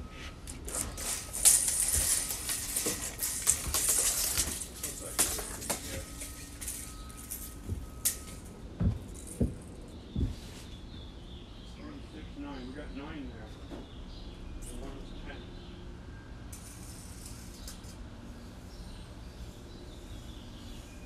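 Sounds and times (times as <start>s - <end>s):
footsteps on wooden deck: 8.8s - 10.7s.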